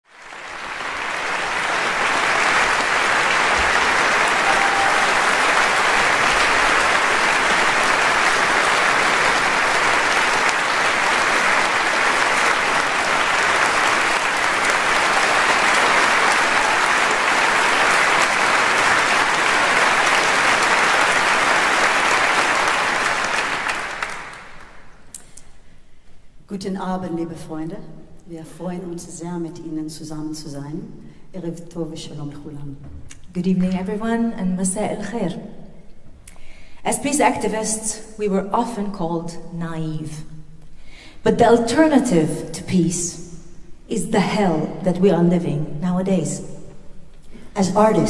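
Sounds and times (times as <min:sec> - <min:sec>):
audience applauding: 0:00.1 - 0:25.0.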